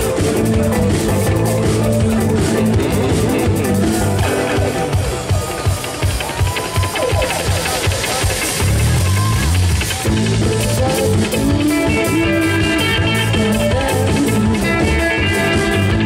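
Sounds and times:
bass guitar: 0.0s - 16.0s
drum kit beat: 0.0s - 16.0s
electric guitar: 0.0s - 16.0s.

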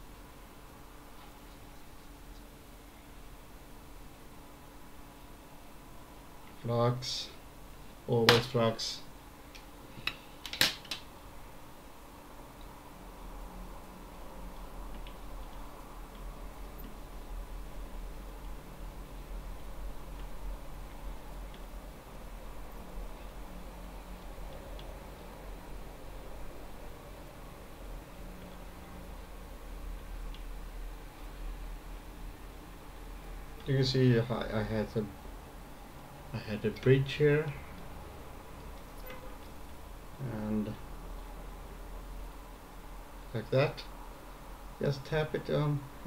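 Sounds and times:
low hum of equipment: 0.0s - 46.0s.

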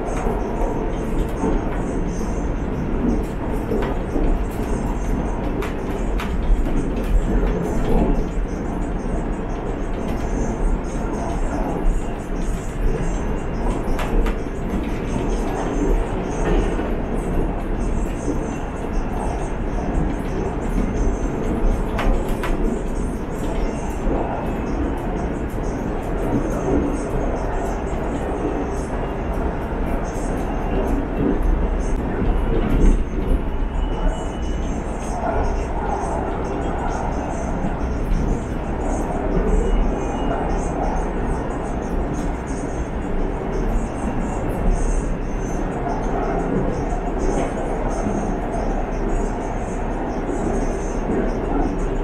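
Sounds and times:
train wheels rumbling on rail: 0.0s - 52.0s.

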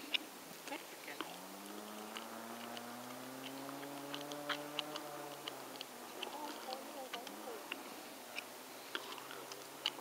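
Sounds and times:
distant car engine humming: 0.0s - 10.0s
small clicks and crunches: 1.2s - 10.0s.

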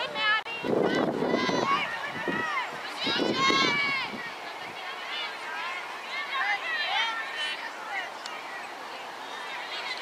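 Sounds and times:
excited high-pitched shouting: 0.0s - 8.1s.

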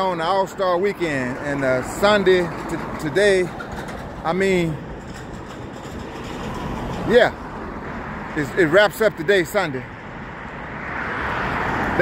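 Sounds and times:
road traffic rushing: 0.0s - 12.0s
vehicle approaching: 0.0s - 12.0s.

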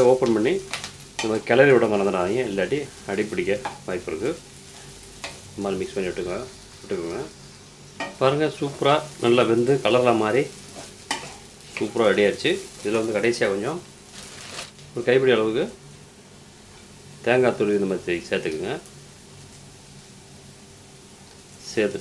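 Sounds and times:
beans sizzling: 0.0s - 22.0s.

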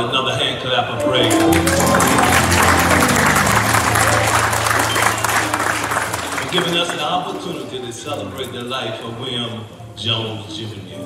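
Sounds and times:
low held instrumental note: 1.0s - 7.0s
congregation clapping: 1.0s - 7.8s.

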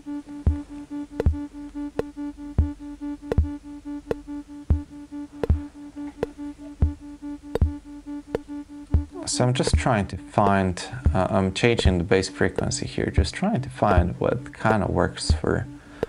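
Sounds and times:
fast-pulsing synth tone: 0.0s - 16.0s
sharp ticks: 0.0s - 16.0s
deep drum thumps: 0.4s - 15.6s.

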